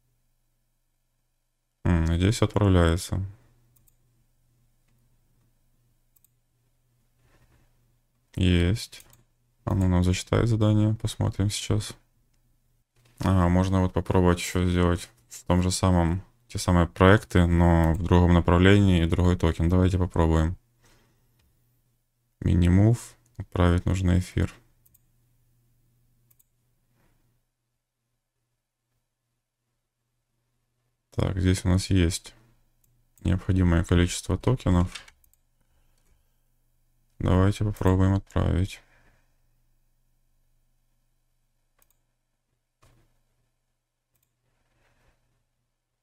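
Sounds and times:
faint low hum: 0.0 - 46.0
mouse click: 26.3 - 26.5, 41.8 - 42.0.

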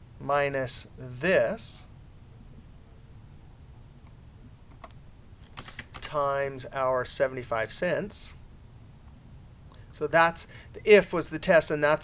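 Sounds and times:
computer keyboard typing: 4.7 - 6.1.

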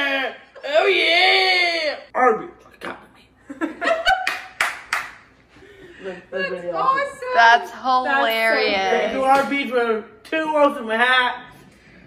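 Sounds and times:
hand clapping: 4.1 - 5.3.

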